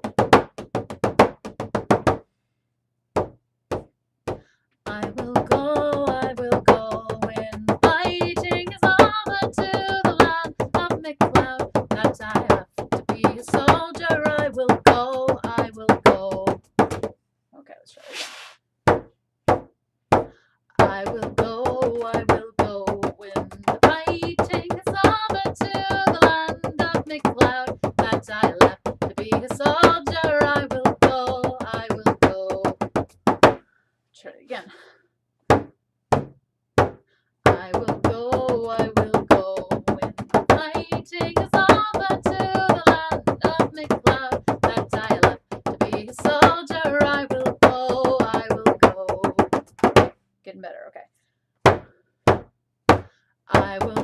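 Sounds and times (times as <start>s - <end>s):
woman singing: 4.9s - 16.6s, 20.8s - 32.8s, 37.5s - 49.5s, 53.5s - 54.0s
frame drum beating: 37.5s - 50.1s.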